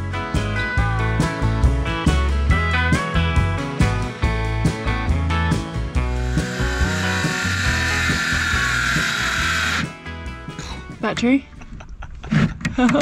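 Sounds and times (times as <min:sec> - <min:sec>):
circular saw cutting plywood: 0:05.9 - 0:10.0.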